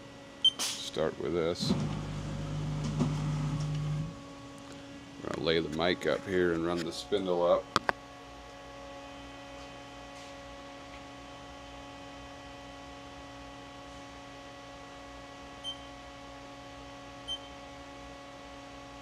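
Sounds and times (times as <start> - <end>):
machine electrical hum: 0.0 - 19.0.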